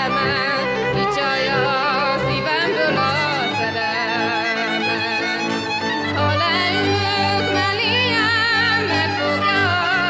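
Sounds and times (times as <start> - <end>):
sustained instrumental accompaniment: 0.0 - 10.0
woman singing folk song: 0.0 - 10.0.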